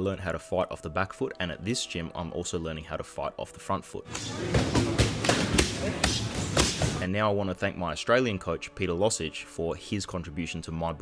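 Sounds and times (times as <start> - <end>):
boxing gloves striking mitts: 4.1 - 7.0
gym noise: 4.1 - 7.0.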